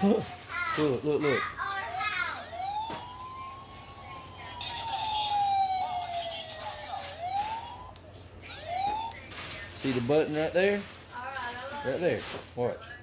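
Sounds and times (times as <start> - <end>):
electronic police siren: 1.9 - 10.0.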